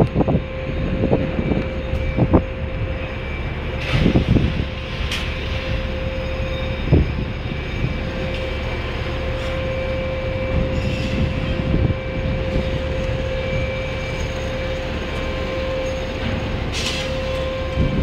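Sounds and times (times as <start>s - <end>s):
crane hoist machinery rumble and whine: 0.0s - 18.0s.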